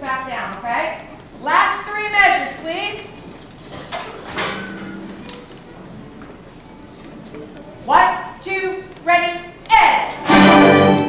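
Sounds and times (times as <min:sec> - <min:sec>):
rustling and knocking of violins: 0:03.0 - 0:06.4.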